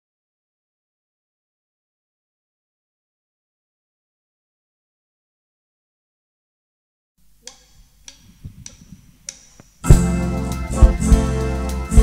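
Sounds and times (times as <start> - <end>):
count-in clicks: 7.4 - 10.0
live band with organ and keyboards: 9.8 - 12.0
heavy kick drum thumps: 9.9 - 12.0.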